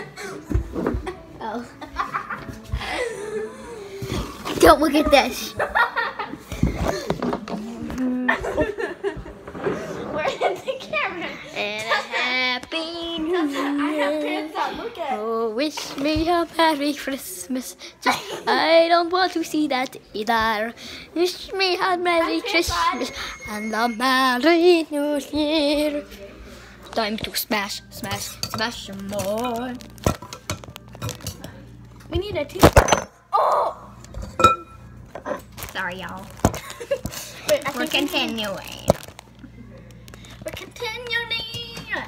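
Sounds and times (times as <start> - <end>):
utensils clinking against glass bowl: 27.9 - 31.5.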